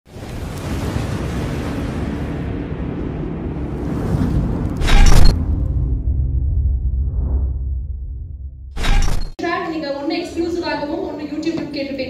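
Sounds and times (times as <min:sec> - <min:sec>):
low rumble: 0:00.4 - 0:08.8
woman speaking into a microphone: 0:09.4 - 0:12.0.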